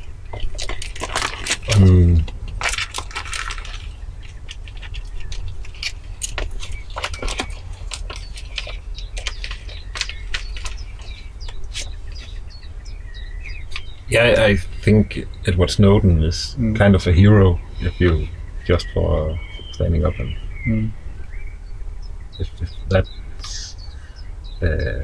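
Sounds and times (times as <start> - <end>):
steady low rumble: 0.0 - 25.0
light clicks and rustles: 0.3 - 12.4.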